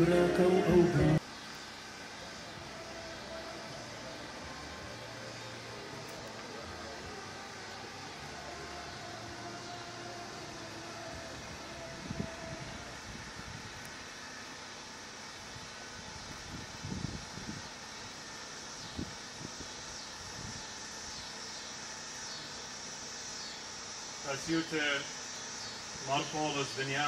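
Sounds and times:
outdoor hiss and low hum: 0.0s - 27.0s.

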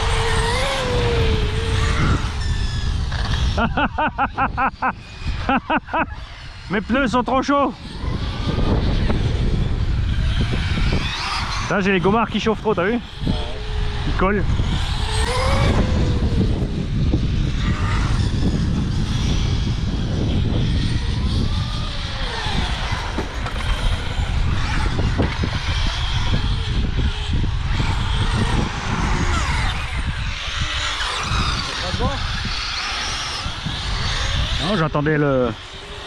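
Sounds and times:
radio-controlled car motors whining: 0.0s - 36.0s.

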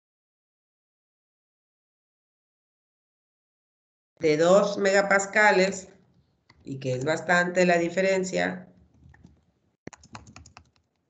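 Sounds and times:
keyboard typing: 8.8s - 11.0s.

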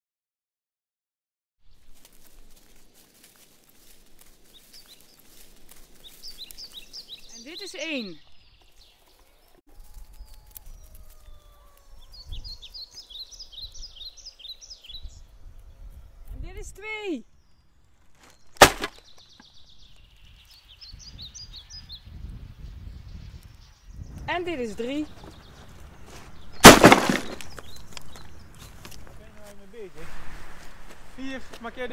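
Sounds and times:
songbird singing: 1.6s - 30.0s
small crackles and rustles: 1.7s - 7.3s, 8.6s - 11.9s, 27.2s - 31.8s
bird chirping: 4.3s - 9.6s, 10.2s - 29.8s
sharp knock: 18.6s - 19.0s.

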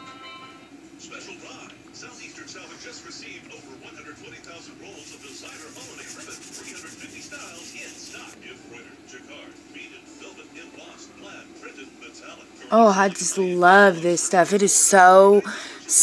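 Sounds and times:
television music: 0.0s - 16.0s
television voices talking: 0.9s - 16.0s.

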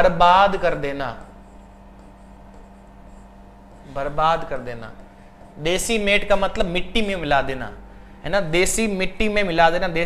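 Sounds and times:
stylus scratching on tablet: 0.0s - 6.9s
low electrical hum: 0.0s - 10.0s.

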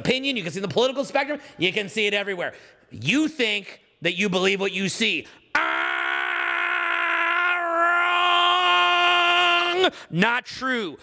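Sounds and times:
man holding long aaah: 5.5s - 10.2s.

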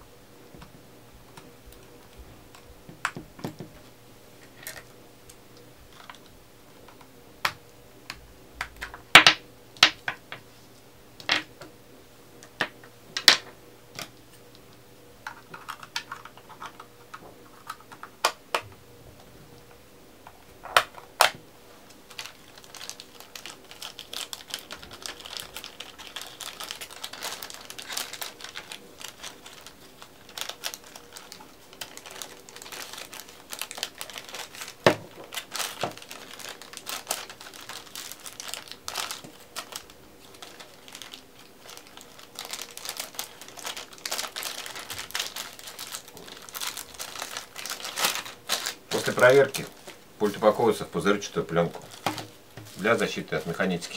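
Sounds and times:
plastic bag crinkling: 5.9s - 6.4s, 20.6s - 53.9s.

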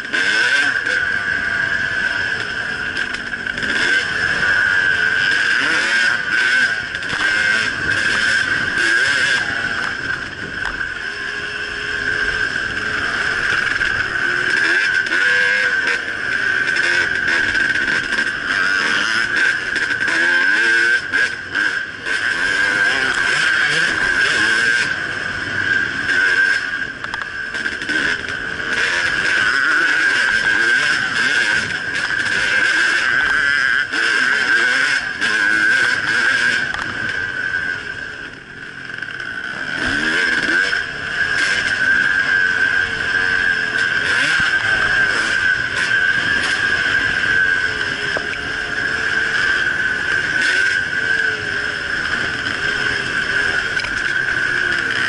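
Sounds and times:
dirt bike engine revving: 0.0s - 55.0s.

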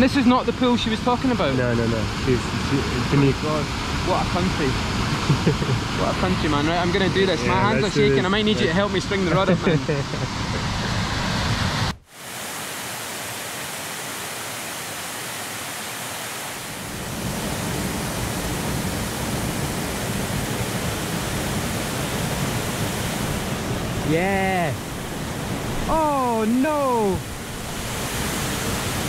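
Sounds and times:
waterfall pouring into pool: 12.1s - 24.8s, 25.8s - 29.0s.

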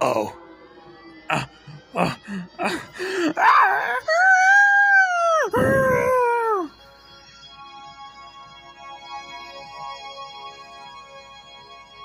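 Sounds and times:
faint steady music tones: 0.0s - 12.0s
man screaming in fright: 1.3s - 6.7s.

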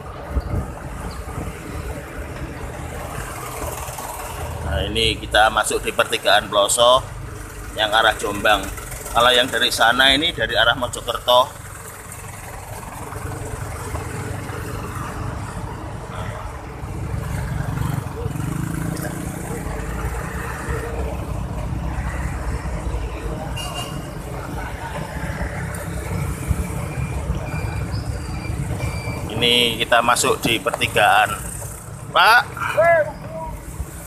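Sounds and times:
wind buffeting microphone: 0.0s - 3.4s
road and engine noise: 0.0s - 34.0s.

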